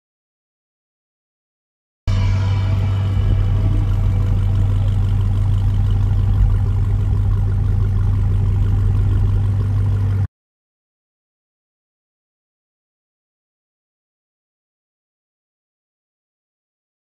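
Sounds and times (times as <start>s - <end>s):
car engine idling: 2.1s - 10.3s.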